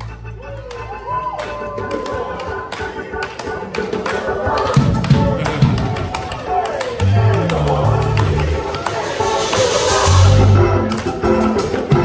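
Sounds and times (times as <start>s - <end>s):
band music: 0.0s - 12.0s
choir hand clapping: 0.0s - 12.0s
choir singing and calling out: 0.0s - 12.0s.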